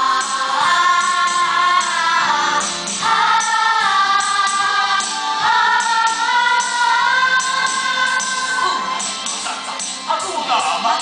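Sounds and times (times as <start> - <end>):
choir singing held notes: 0.0 - 9.8
light percussion beat: 2.6 - 11.0.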